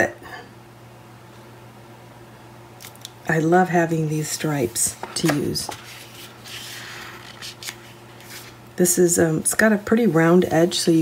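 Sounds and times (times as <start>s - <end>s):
hands rubbing over paper: 4.4s - 8.6s.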